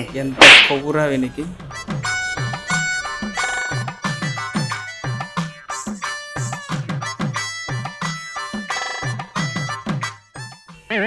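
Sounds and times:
background music: 0.0s - 11.0s
sharp whip-crack swish: 0.4s - 0.9s.

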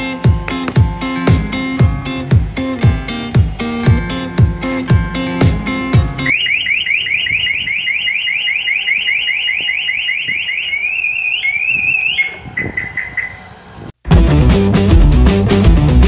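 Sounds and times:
car alarm siren: 6.2s - 13.8s.

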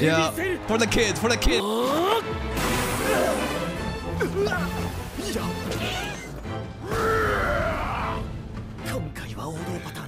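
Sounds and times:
soundtrack music: 0.0s - 10.0s.

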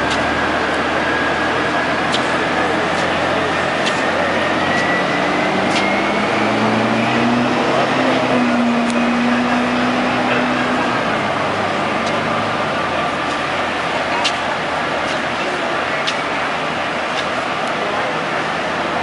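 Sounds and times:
faint rising whine: 0.0s - 16.0s
vehicle engine humming: 0.0s - 19.0s.

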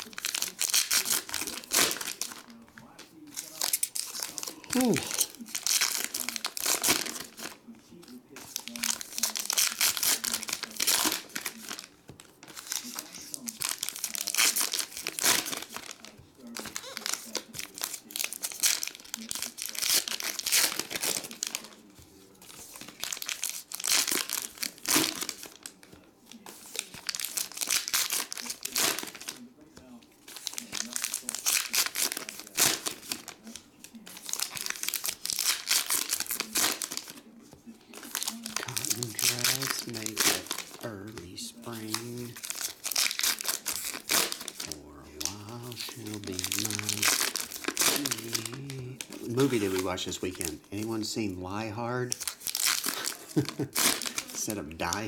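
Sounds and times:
card pack wrappers crinkling: 0.0s - 29.5s, 30.2s - 55.0s.

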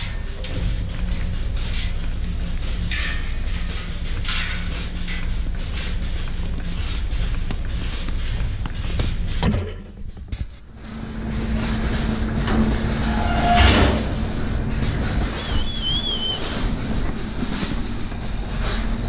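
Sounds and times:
cows clattering on concrete: 2.4s - 10.6s
milking machinery humming: 10.6s - 19.0s
short warbling whistle: 15.4s - 16.6s.

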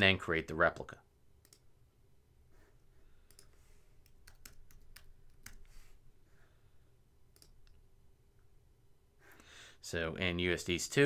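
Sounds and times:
mouse click: 1.4s - 1.7s, 7.3s - 7.8s.

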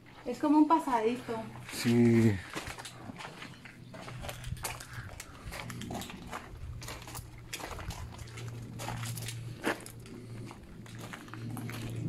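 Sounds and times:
footsteps crunching on gravel: 0.0s - 12.0s
low steady hum: 0.0s - 12.0s.

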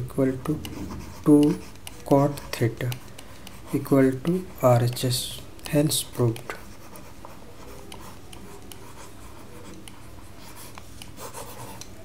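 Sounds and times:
stylus scratching and tapping on tablet: 0.0s - 12.0s.

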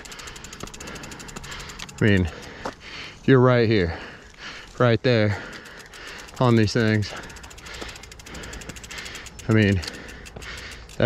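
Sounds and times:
bike freehub ratcheting clicks: 0.0s - 3.2s, 3.8s - 11.0s.

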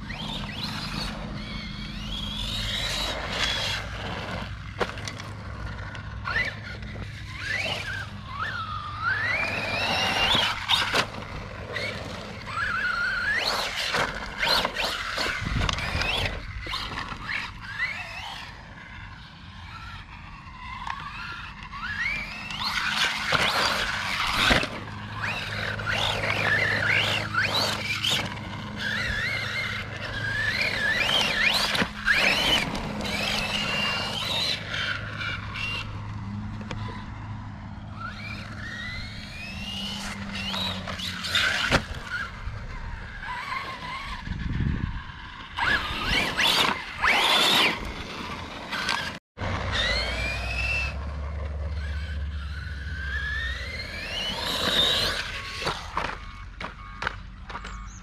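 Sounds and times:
rc truck motor whining: 0.0s - 58.0s
tyres sliding on dirt: 0.0s - 58.0s.

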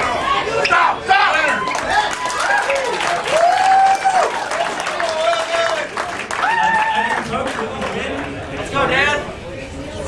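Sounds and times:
spectators applauding and cheering: 1.1s - 8.6s.

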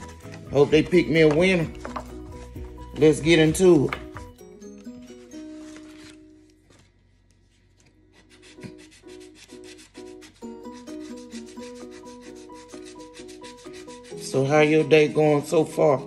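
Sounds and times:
soft music with repeating melody: 0.0s - 6.6s, 8.9s - 16.0s
lottery ticket being scratched: 8.2s - 15.3s.

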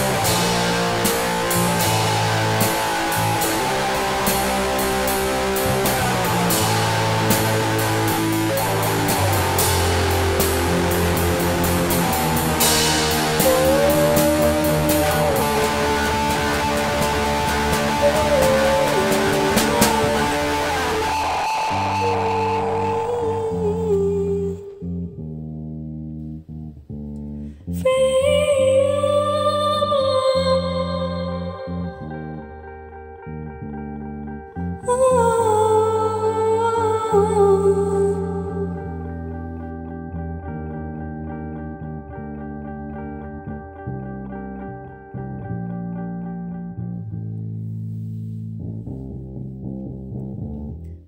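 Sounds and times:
band music: 0.0s - 24.6s
person singing long notes: 0.0s - 25.2s, 27.7s - 32.6s, 34.7s - 39.2s
bass guitar and guitar: 0.0s - 51.0s.

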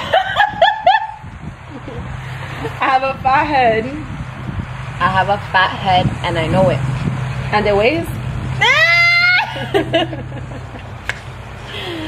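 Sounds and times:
young women laughing: 0.0s - 2.8s, 8.6s - 12.0s.

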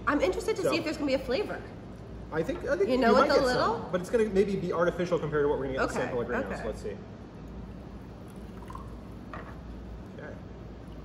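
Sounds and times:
soda pouring and fizzing: 7.8s - 11.0s.

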